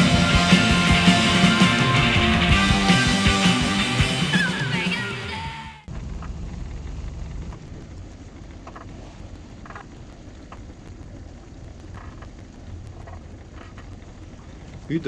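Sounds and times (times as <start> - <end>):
background music: 0.0 - 5.9
sailboat low rumble: 5.4 - 15.0.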